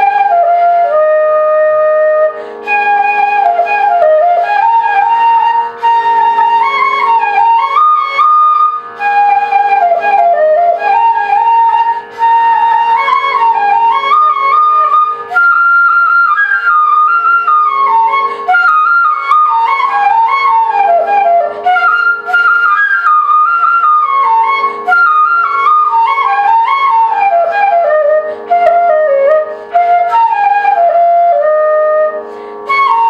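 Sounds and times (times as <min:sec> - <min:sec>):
bamboo flute melody: 0:00.0 - 0:33.0.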